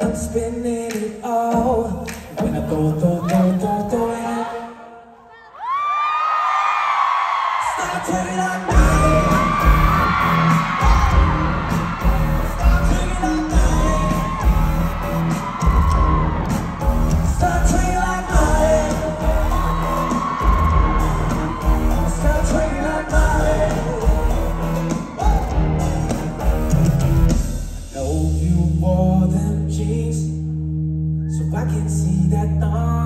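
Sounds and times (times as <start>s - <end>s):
pop music through loudspeakers: 0.0s - 5.9s, 6.9s - 30.4s, 31.3s - 33.0s
crowd whooping: 5.4s - 27.8s
heavy pulsing bass beat: 8.7s - 28.7s.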